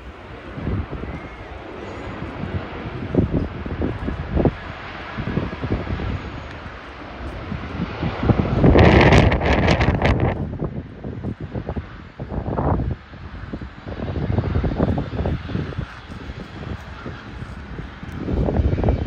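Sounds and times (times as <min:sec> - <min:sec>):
jet airliner taxiing rumble: 0:00.0 - 0:19.0
wind buffeting microphone: 0:00.0 - 0:19.0.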